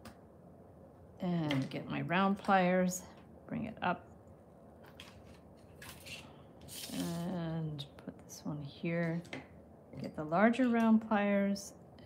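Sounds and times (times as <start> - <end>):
scratchy rustles: 5.0 - 7.4
wire scraping against paper: 5.0 - 7.4.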